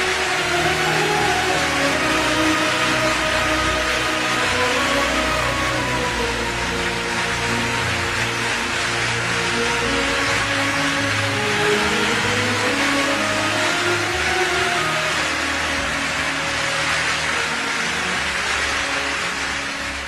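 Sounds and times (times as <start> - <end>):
audience applause: 0.0 - 20.0
music holding long notes: 0.0 - 20.0.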